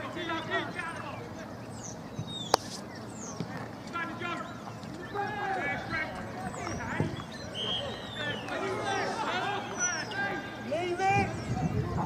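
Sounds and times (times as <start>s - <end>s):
players shouting: 3.9s - 11.3s.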